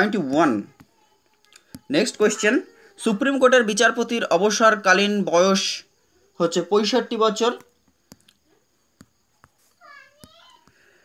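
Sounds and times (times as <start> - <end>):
faint clicks: 0.7 - 1.9.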